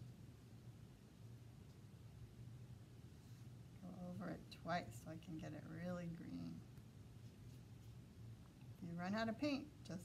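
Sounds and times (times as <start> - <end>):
paintbrush brushing on paper: 7.1 - 8.2.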